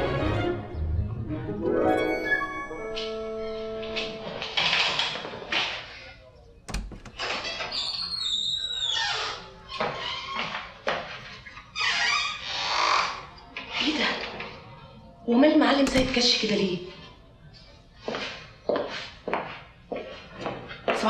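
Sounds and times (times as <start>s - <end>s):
background music: 0.0s - 4.8s
door thump: 6.7s - 7.4s, 15.8s - 16.3s
door hinge squeak: 6.7s - 10.5s, 11.8s - 13.1s, 15.8s - 16.2s.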